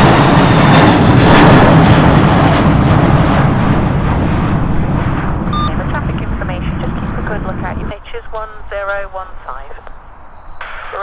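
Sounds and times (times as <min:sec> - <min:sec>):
faint low rumble: 0:00.0 - 0:11.0
radio voice: 0:05.6 - 0:09.9, 0:10.8 - 0:11.0
radio hiss: 0:05.6 - 0:10.0, 0:10.6 - 0:11.0.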